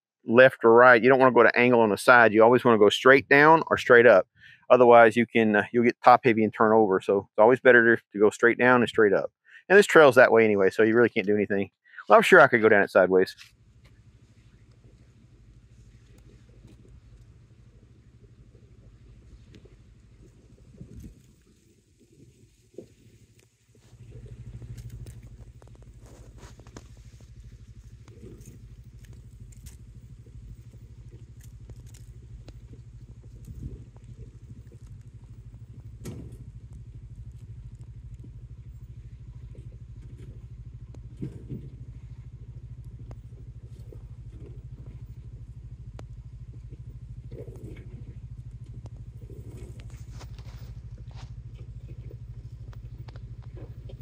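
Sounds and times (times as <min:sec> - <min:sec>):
utility vehicle engine low revs: 0:12.0 - 0:54.0.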